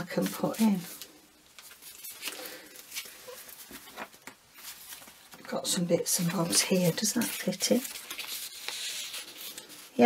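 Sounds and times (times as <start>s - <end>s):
paper rustling: 0.2s - 5.6s, 6.2s - 10.0s.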